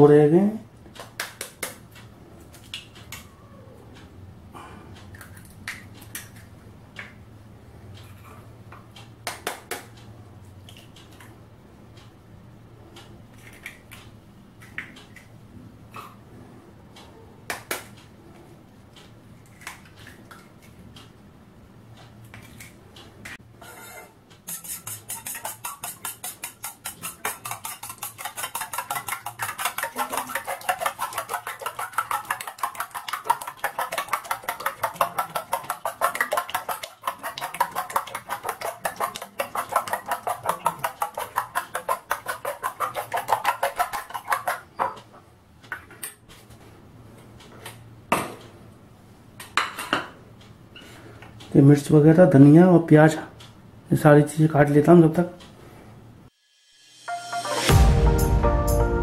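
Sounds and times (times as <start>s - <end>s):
spoon clinking against metal bowl: 24.5s - 42.4s.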